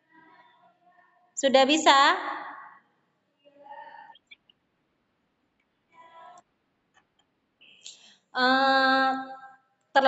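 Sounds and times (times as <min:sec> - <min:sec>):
faint distant voice: 0:03.4 - 0:04.3, 0:05.9 - 0:06.5.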